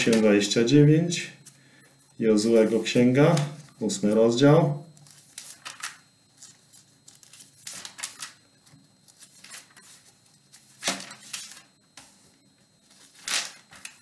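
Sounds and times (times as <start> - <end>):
thin pages rustling: 5.0 - 14.0.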